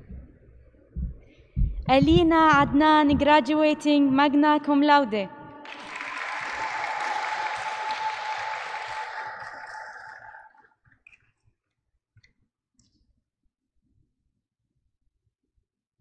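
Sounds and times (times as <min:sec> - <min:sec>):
audience applauding: 0:05.6 - 0:10.7.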